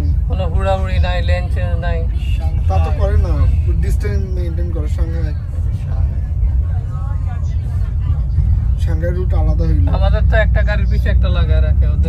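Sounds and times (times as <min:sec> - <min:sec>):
bus engine and tyres rumbling: 0:00.0 - 0:12.0.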